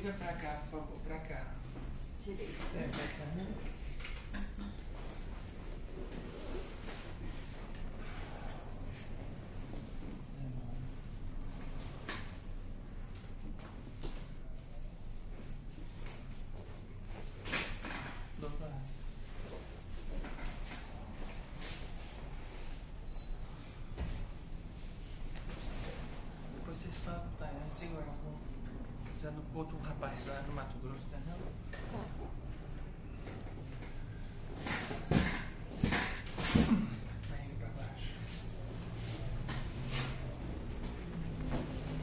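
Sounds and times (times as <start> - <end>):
rustling on padded table: 23.6 - 27.0, 37.8 - 42.0.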